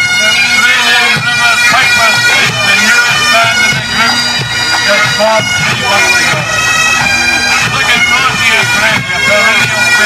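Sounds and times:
massed bagpipes playing: 0:00.0 - 0:10.0.

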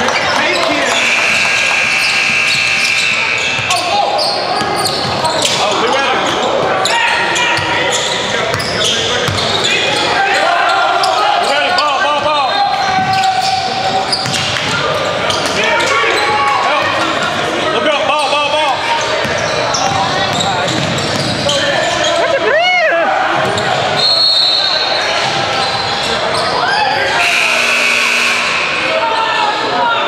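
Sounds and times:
sneakers squeaking: 0:00.0 - 0:17.4, 0:18.2 - 0:22.3, 0:23.4 - 0:30.0.

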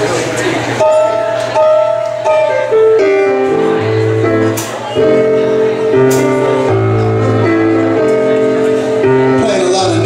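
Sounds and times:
room chatter: 0:00.0 - 0:10.0
blues band with saxophone: 0:00.6 - 0:10.0.

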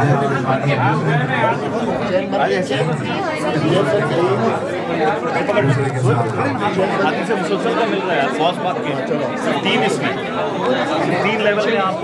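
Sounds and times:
men talking at once: 0:00.0 - 0:12.0.

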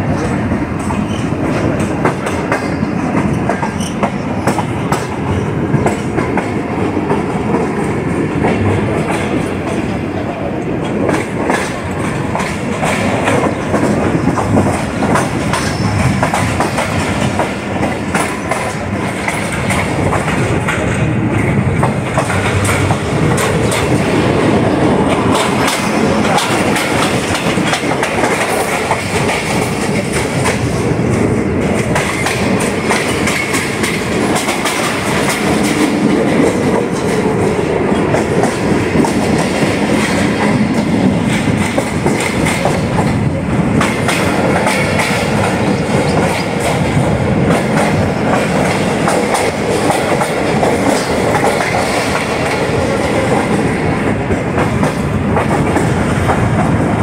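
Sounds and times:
train wheels rumbling on rails: 0:00.0 - 0:57.0
clatter over rail joints: 0:00.1 - 0:10.0, 0:10.8 - 0:57.0.

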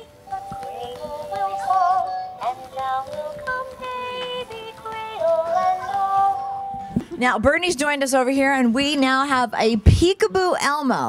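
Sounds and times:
plush toy singing a lullaby: 0:00.0 - 0:06.5.

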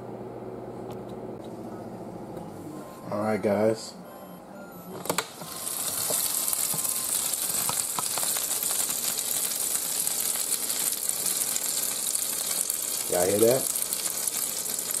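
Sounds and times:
chicken wings sizzling: 0:05.2 - 0:15.0.

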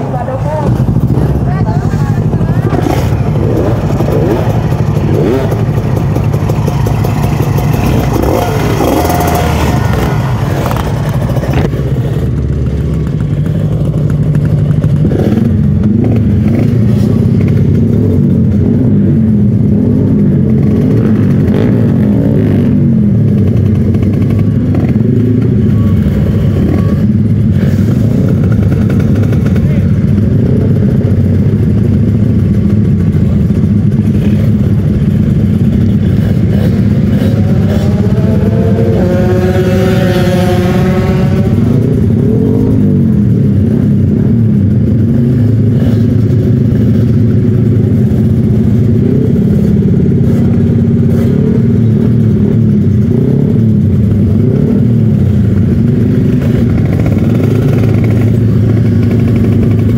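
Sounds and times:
people talking: 0:00.0 - 0:04.5, 0:25.7 - 0:27.2, 0:28.8 - 0:30.1
motorcycle engine idling: 0:00.0 - 0:59.9.

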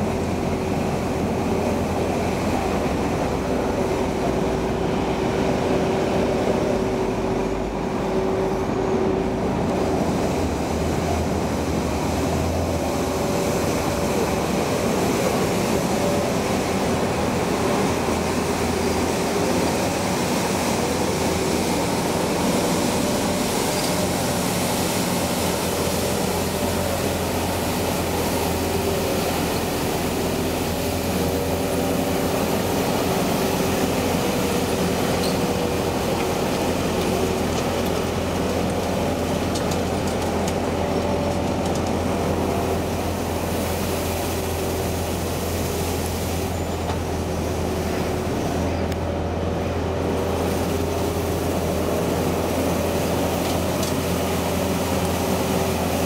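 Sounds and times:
street sweeper running: 0:00.0 - 0:56.0.

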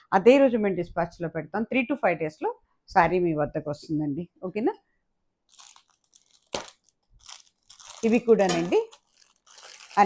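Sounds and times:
plastic crinkling: 0:05.5 - 0:10.0.

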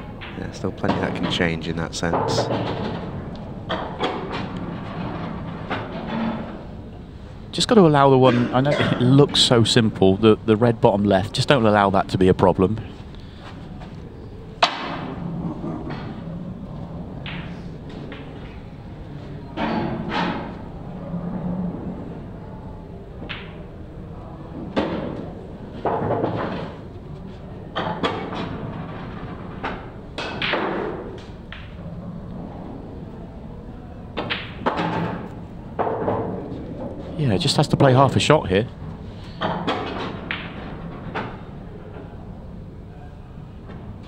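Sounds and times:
pool balls clicking and knocking: 0:00.0 - 0:07.0, 0:14.1 - 0:22.1, 0:23.0 - 0:33.0, 0:34.1 - 0:42.6
low hall background: 0:00.0 - 0:44.0.

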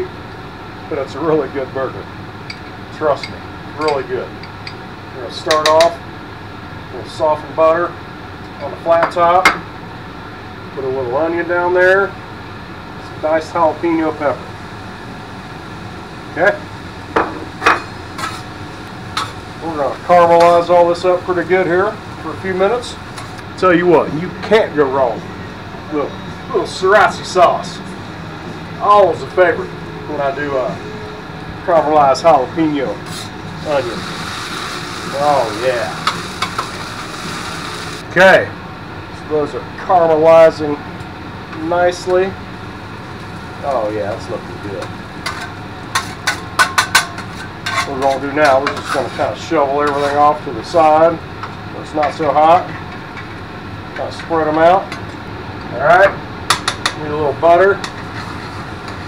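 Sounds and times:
metal spatula scraping on griddle: 0:17.6 - 0:18.5, 0:33.0 - 0:38.0, 0:45.2 - 0:50.4, 0:57.8 - 0:58.6
metal spatulas clacking on griddle: 0:45.2 - 0:48.8.

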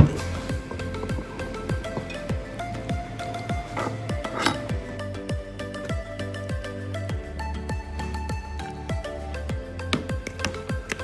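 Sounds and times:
background music with bass drum: 0:00.0 - 0:11.0
metal spoon clinking and scraping: 0:03.7 - 0:04.8.

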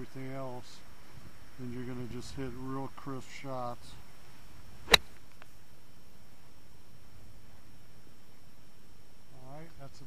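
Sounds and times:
golf club striking ball: 0:04.8 - 0:05.2.

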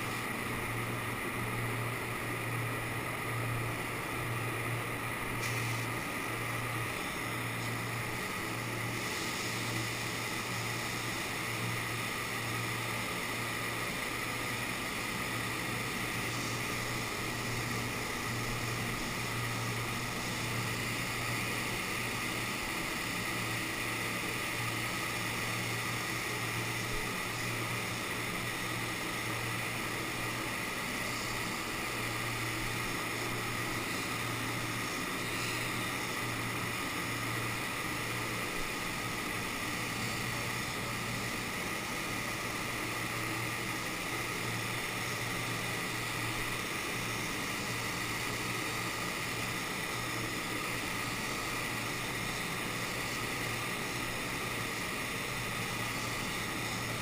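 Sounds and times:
spray gun rush of air: 0:00.0 - 0:57.0.

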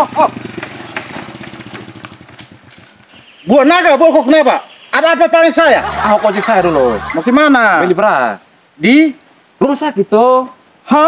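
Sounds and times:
small motorcycle engine: 0:00.0 - 0:02.9.

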